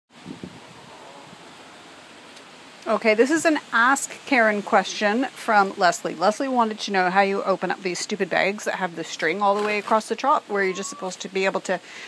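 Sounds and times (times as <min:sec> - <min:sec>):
wind on microphone: 0:00.1 - 0:01.6.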